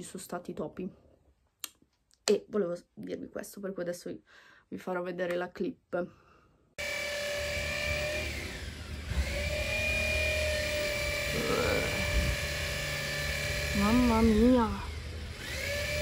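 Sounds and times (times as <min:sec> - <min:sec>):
small motor whining: 0:06.8 - 0:16.0.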